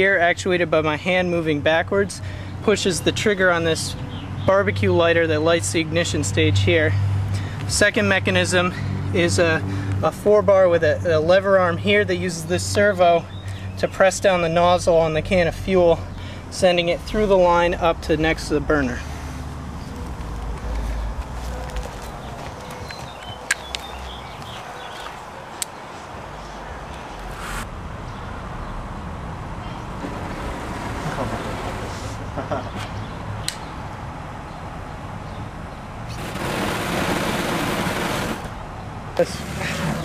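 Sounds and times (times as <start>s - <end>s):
sharp clicks: 33.4s - 33.7s
flamethrower hissing rush: 36.1s - 38.5s.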